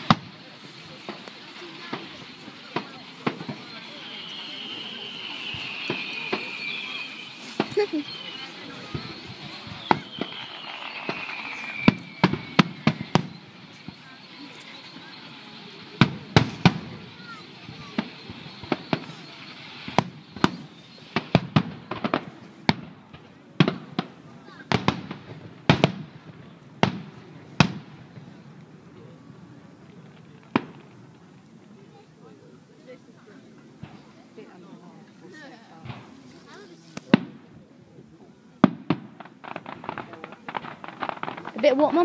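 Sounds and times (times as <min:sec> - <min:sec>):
firework shells bursting: 0:00.0 - 0:24.1, 0:38.6 - 0:42.0
high falling whistle: 0:03.3 - 0:15.9.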